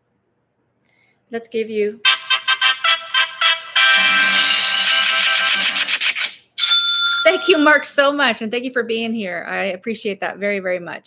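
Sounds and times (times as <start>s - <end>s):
musical sound effect from phone: 2.0s - 7.8s
high electronic tone: 2.1s - 7.8s.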